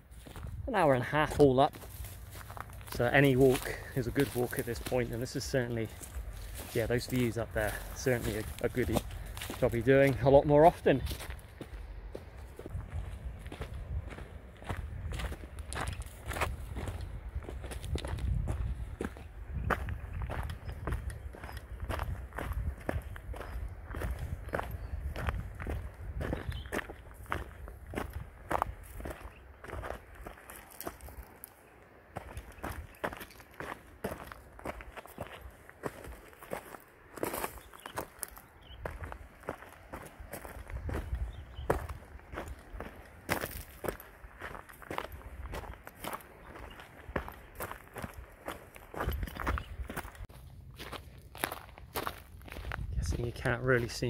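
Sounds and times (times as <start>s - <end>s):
footsteps crunching on stony trail: 0.0s - 54.0s.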